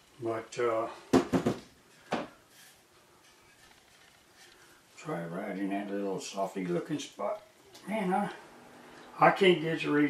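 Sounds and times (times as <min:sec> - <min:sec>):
wood knocking on countertop: 0:01.1 - 0:02.4.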